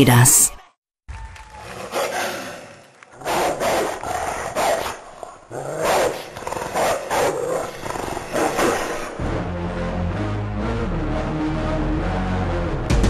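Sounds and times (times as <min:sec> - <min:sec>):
dog-like growls and barks: 0:01.6 - 0:09.2.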